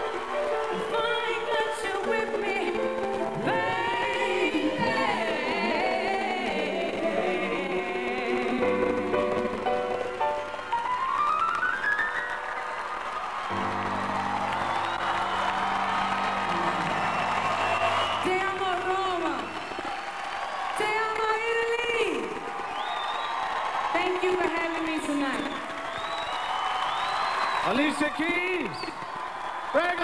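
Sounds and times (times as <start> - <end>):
piano: 0.0 - 20.9.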